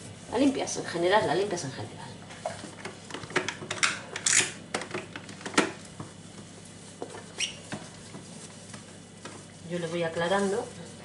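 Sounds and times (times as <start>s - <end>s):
damp cloth rubbing plastic: 5.8s - 11.0s.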